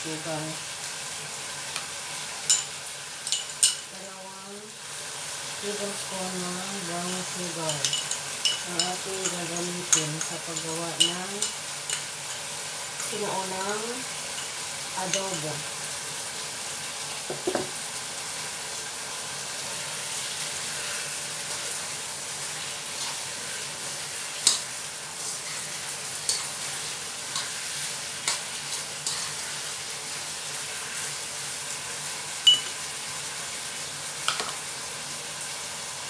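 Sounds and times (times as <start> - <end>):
meat sizzling in a wok: 0.0 - 36.0.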